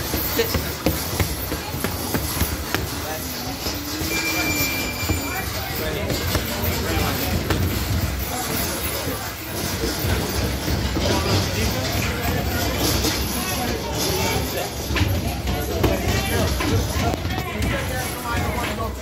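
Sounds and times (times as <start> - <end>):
boxing gloves striking mitts: 0.0 - 11.6
steady noisy background: 0.0 - 19.0.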